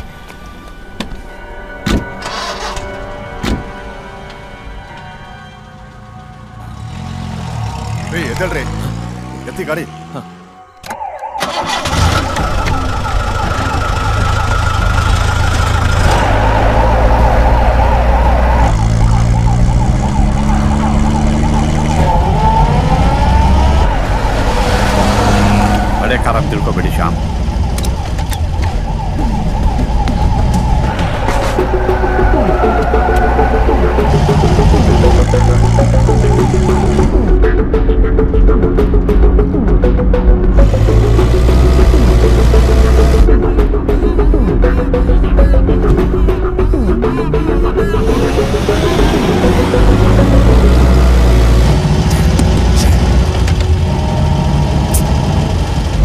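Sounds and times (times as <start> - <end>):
film score: 0.0 - 56.0
road noise: 0.0 - 56.0
car engine revving: 6.6 - 10.6, 11.4 - 56.0
siren wavering rapidly: 10.9 - 37.2.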